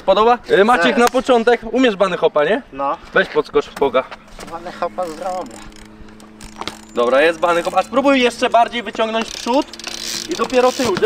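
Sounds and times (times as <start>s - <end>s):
bike rolling on concrete: 2.8s - 11.0s
freewheel ratchet ticking: 4.5s - 11.0s
bike landing knock: 8.9s - 11.0s.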